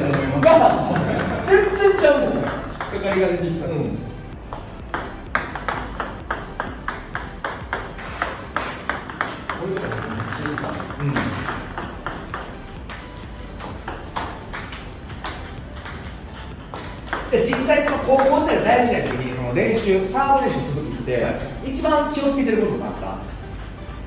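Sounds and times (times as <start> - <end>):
ping pong ball clicking off paddle: 0.0 - 3.3, 4.5 - 24.0
ball bouncing on table: 0.0 - 3.4, 4.5 - 24.0
person speaking: 0.0 - 4.2, 9.4 - 11.9, 17.2 - 23.4.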